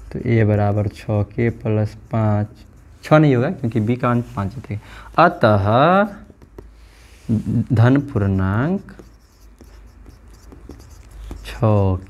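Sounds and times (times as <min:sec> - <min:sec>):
marker pen writing on whiteboard: 0:00.0 - 0:12.0
marker tip ticks: 0:08.0 - 0:11.8.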